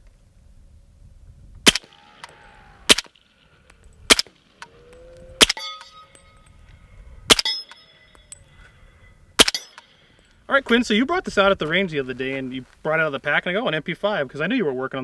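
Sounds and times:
rifle shots: 0:01.6 - 0:04.8, 0:05.4 - 0:06.0, 0:07.3 - 0:07.8, 0:09.4 - 0:10.0
faint metallic ringing: 0:02.4 - 0:10.5.

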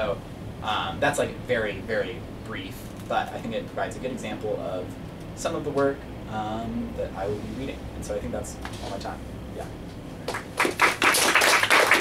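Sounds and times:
people clapping: 0:10.2 - 0:12.0.

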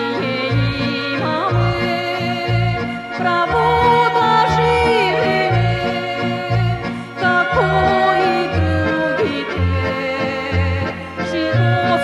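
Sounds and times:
accordion: 0:00.0 - 0:12.0
guitar: 0:00.0 - 0:12.0
woman singing with vibrato: 0:00.0 - 0:12.0.

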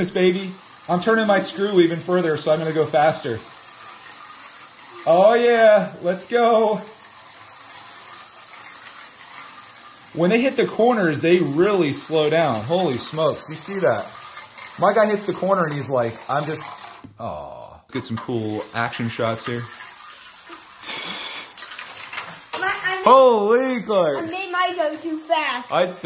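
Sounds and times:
slot car motors whirring: 0:00.0 - 0:26.0.

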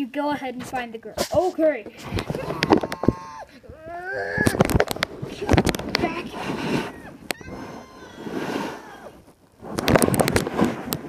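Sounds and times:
person making wordless sounds: 0:01.2 - 0:09.2.

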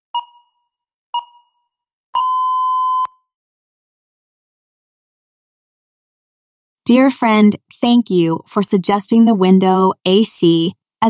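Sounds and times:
electronic timer beep: 0:00.1 - 0:03.3.

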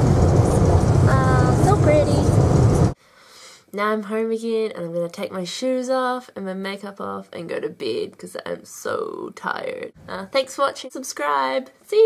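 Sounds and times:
car interior road rumble: 0:00.0 - 0:03.0.

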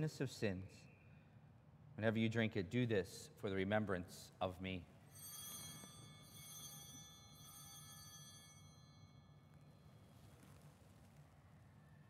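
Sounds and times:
altar bells ringing: 0:05.1 - 0:09.6.

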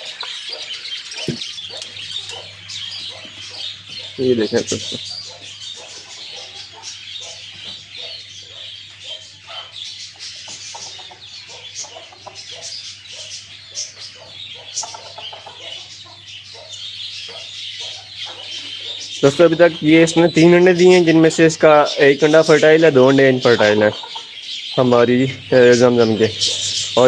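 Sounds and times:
chickens clucking: 0:00.0 - 0:27.0
small birds chirping: 0:00.0 - 0:27.0.

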